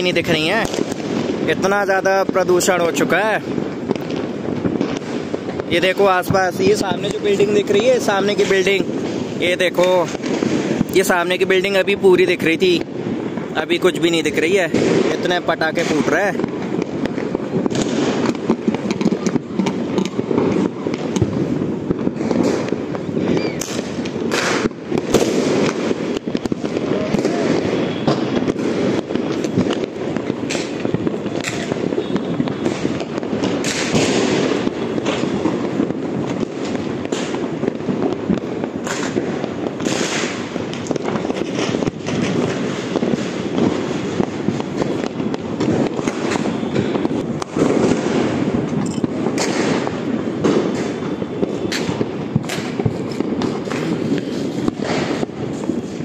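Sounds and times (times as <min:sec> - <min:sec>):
firecrackers crackling: 0:00.0 - 0:56.0
loud firework blasts: 0:00.0 - 0:56.0.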